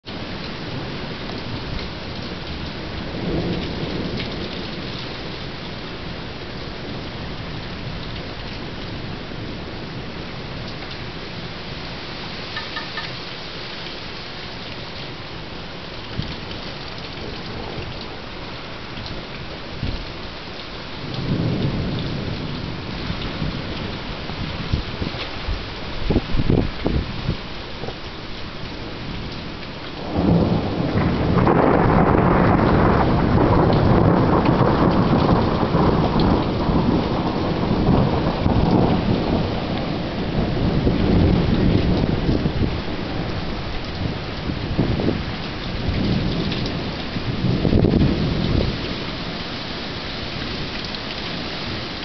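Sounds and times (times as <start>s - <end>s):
steady rain falling: 0.0s - 52.0s
thunder rumbling: 0.1s - 11.8s, 20.9s - 28.0s, 28.7s - 50.7s.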